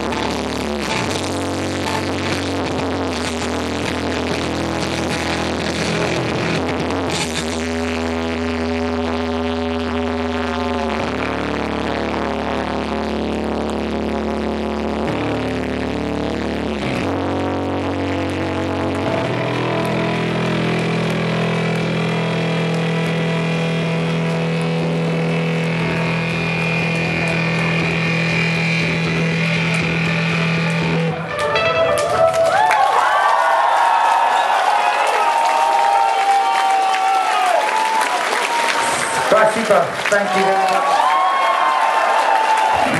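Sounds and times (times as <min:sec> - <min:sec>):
deep bass note: 0:00.0 - 0:32.6
crowd applause and cheering: 0:18.2 - 0:42.9
live band playing: 0:25.7 - 0:33.0
crowd whistling: 0:31.9 - 0:42.9.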